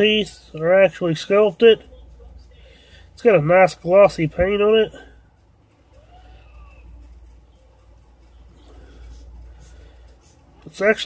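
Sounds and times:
low hum: 0:00.0 - 0:10.8
faint indistinct sounds: 0:00.0 - 0:11.0.

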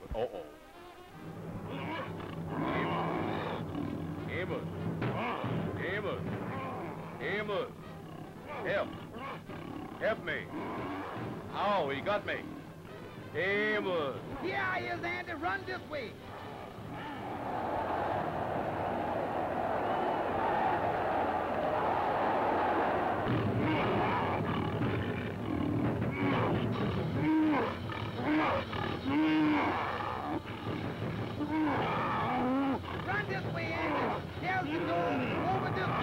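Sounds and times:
rising and falling vocal cries: 0:00.3 - 0:04.2, 0:05.0 - 0:11.5, 0:16.2 - 0:32.9
lion roaring and growling: 0:01.1 - 0:11.7, 0:20.4 - 0:36.0.

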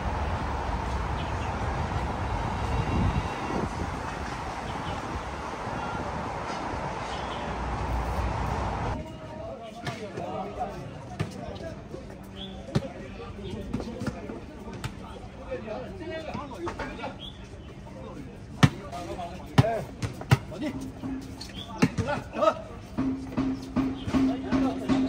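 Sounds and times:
steady noise: 0:00.0 - 0:09.0
players' voices: 0:00.0 - 0:25.0.

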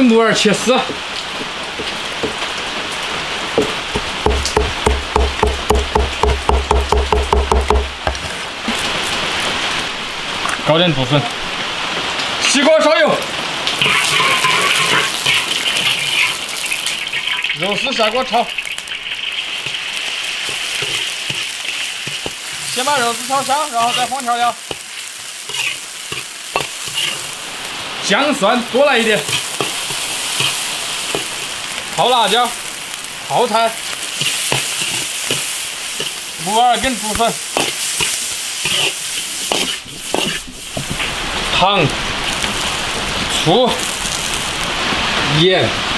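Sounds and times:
food sizzling in a wok: 0:00.0 - 0:45.9
rain falling: 0:00.0 - 0:45.9
metal ladle scraping wok: 0:13.8 - 0:17.8, 0:18.9 - 0:27.7, 0:28.9 - 0:32.8, 0:33.8 - 0:36.5, 0:37.1 - 0:41.2.

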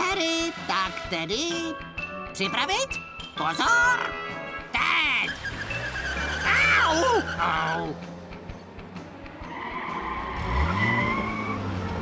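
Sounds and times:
cartoon tyre squeal: 0:05.2 - 0:08.0, 0:09.5 - 0:11.7
car engine revving: 0:05.2 - 0:12.0.

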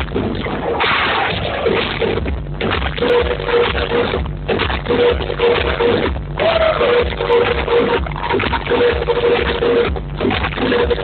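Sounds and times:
muffled techno club music: 0:00.0 - 0:11.0.

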